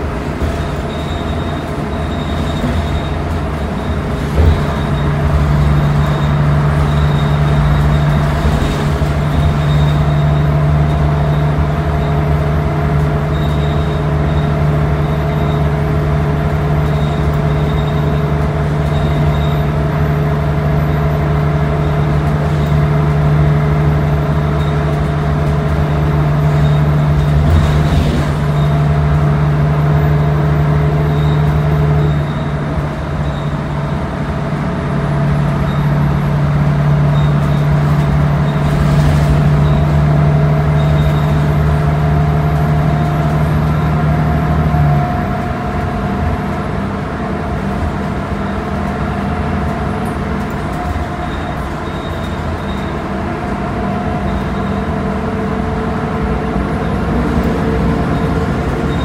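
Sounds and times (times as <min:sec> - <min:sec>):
bus engine drone: 0:00.0 - 0:59.0
road noise: 0:00.0 - 0:59.0.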